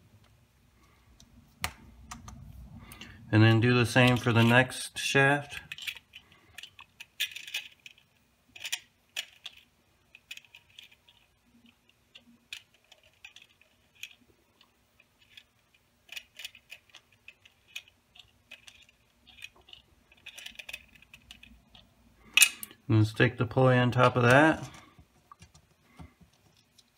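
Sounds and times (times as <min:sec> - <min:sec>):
steel balls and plastic parts clicking: 0:04.0 - 0:22.8, 0:24.0 - 0:26.9.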